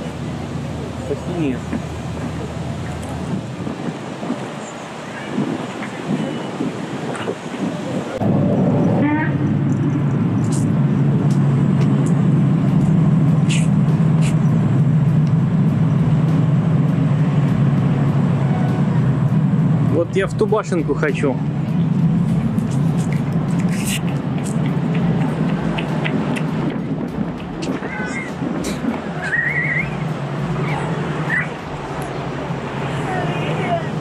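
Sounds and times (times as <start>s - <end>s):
outdoor background noise: 0.0s - 34.0s
low motor hum: 8.2s - 34.0s.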